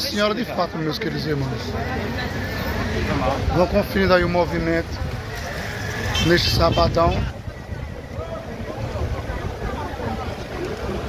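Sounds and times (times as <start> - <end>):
faint voices of passers-by: 0.0 - 11.0
low traffic rumble: 0.0 - 11.0
wind on microphone: 4.8 - 11.0.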